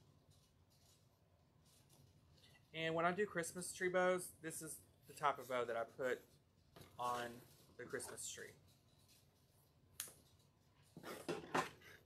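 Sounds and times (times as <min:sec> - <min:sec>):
ribbon crinkling and rustling: 0:00.0 - 0:02.8.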